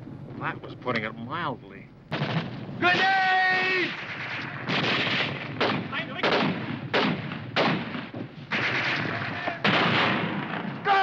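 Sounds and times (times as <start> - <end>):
rifle and artillery fire: 2.1 - 11.0.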